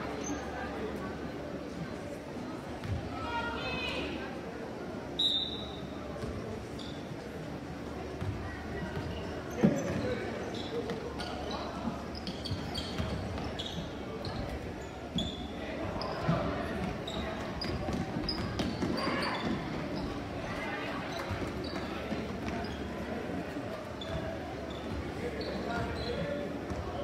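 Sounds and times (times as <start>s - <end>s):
spectator chatter: 0.0s - 27.0s
sneakers squeaking: 0.1s - 0.8s, 5.2s - 7.4s, 8.0s - 27.0s.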